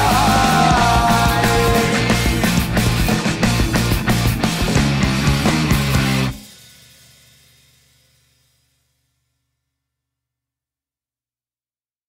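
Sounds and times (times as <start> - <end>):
punk rock band final chord: 0.0 - 6.4.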